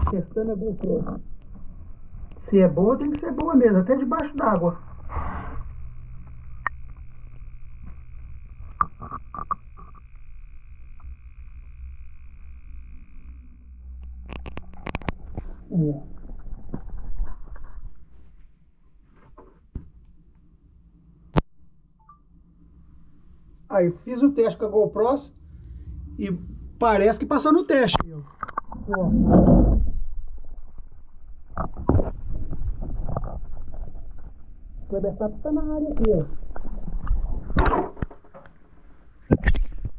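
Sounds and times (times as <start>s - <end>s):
underwater low rumble: 0.0s - 18.3s, 24.8s - 38.2s
faint high whine: 0.0s - 18.9s, 20.0s - 29.1s
underwater rumble and sloshing: 25.3s - 34.9s.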